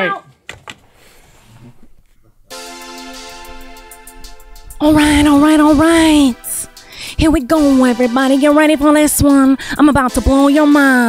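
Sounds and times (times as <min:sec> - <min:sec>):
instrumental backing track chord: 0:02.5 - 0:11.0.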